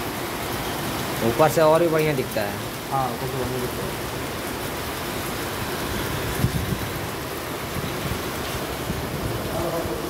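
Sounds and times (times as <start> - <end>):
heavy rain falling: 0.0 - 10.0.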